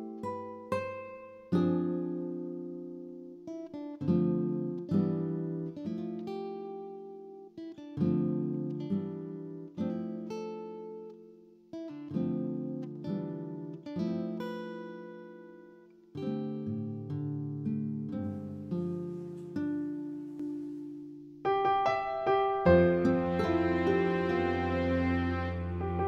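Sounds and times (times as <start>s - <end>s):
slow acoustic guitar chords: 0.0s - 26.0s.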